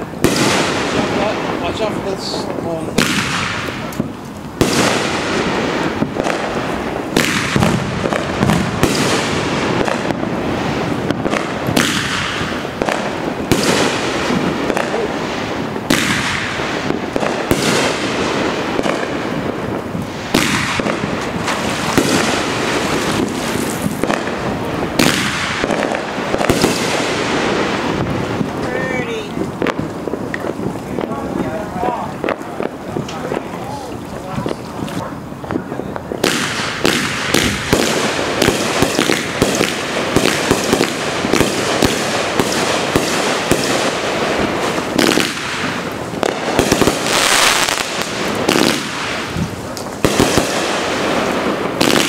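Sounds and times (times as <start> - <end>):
firework shells bursting: 0.0 - 52.0.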